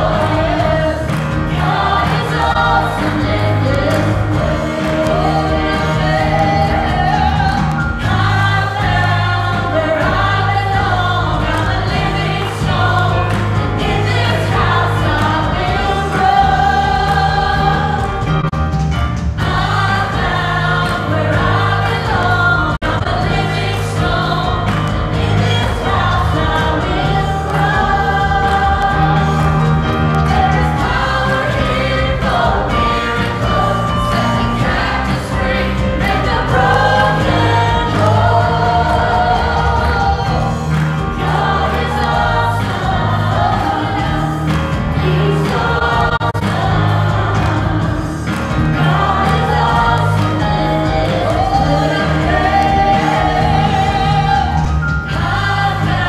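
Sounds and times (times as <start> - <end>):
group singing gospel song: 0.0 - 18.6, 19.3 - 56.0
drums: 0.0 - 56.0
guitar: 0.0 - 56.0
piano: 0.0 - 56.0.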